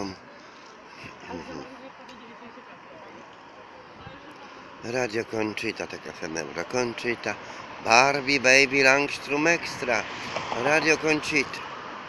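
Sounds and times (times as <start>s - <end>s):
faint voices of passers-by: 0.0s - 12.0s
murmur of traffic: 0.0s - 12.0s.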